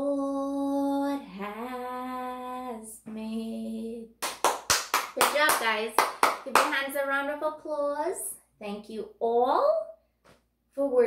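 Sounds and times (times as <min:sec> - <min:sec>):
hand claps: 0:04.2 - 0:06.9
person talking: 0:05.2 - 0:09.9.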